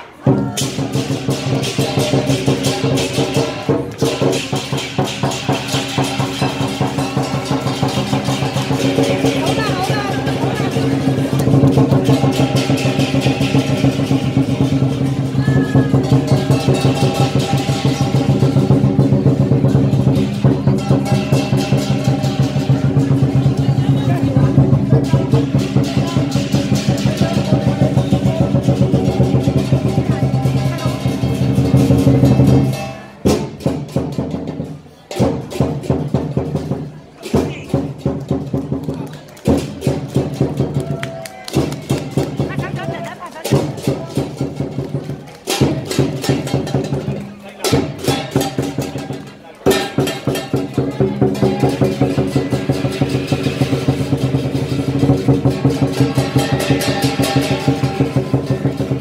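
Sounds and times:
cymbals crashing: 0.2 - 38.6, 41.5 - 59.0
large drum beating: 0.2 - 59.0.

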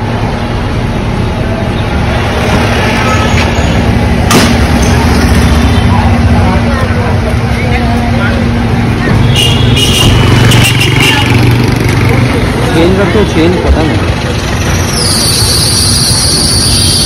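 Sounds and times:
vehicle engines humming: 0.0 - 17.0
faint voices: 5.6 - 9.4.

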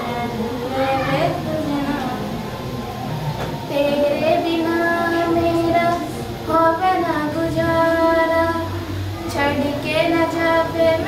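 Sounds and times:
girl singing long wordless notes: 0.0 - 2.4, 3.7 - 11.0.

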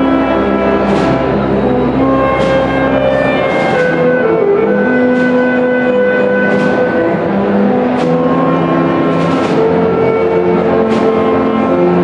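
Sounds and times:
concert band wind chords: 0.0 - 12.0.

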